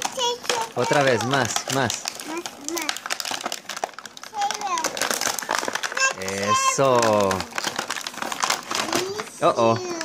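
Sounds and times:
plastic packaging crinkling: 0:00.0 - 0:10.0
toddler's voice: 0:00.1 - 0:01.4, 0:02.2 - 0:03.0, 0:04.3 - 0:05.0, 0:05.9 - 0:07.2, 0:08.8 - 0:10.0.

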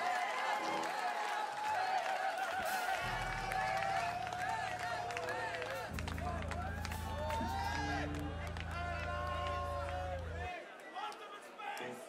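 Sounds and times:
crowd cheering and shouting: 0:00.0 - 0:12.0
crowd clapping: 0:00.0 - 0:12.0
band holding low chord: 0:03.0 - 0:10.5.

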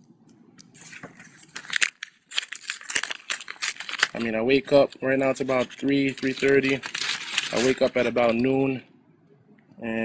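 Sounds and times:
paper envelopes crackling: 0:00.8 - 0:08.8.

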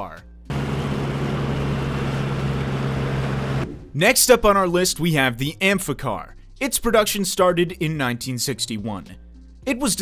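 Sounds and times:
car engine humming: 0:00.5 - 0:03.7.

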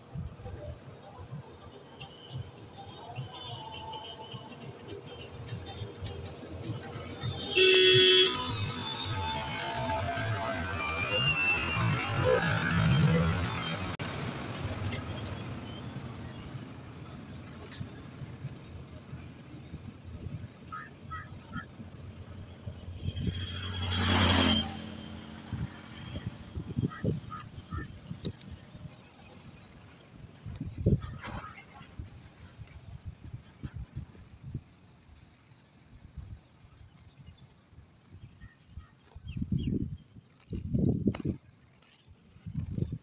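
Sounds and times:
road traffic noise: 0:00.0 - 0:43.0
skate wheels rolling on asphalt: 0:00.0 - 0:43.0
vehicle horn: 0:06.9 - 0:09.6
vehicle passing by: 0:08.2 - 0:17.0, 0:21.5 - 0:27.9.

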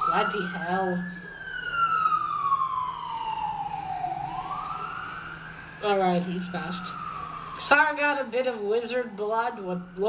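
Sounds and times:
emergency vehicle siren wailing: 0:00.0 - 0:10.0.

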